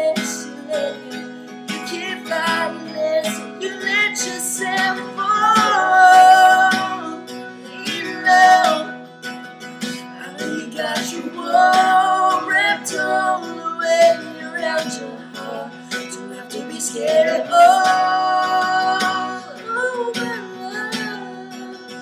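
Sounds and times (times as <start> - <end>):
person singing: 0.0 - 9.1, 9.8 - 22.0
acoustic guitar strummed: 0.0 - 22.0.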